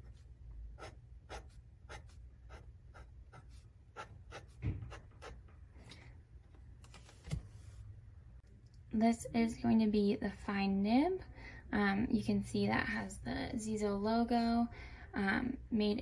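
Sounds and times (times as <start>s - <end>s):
pen scratching on paper: 0.0s - 5.4s.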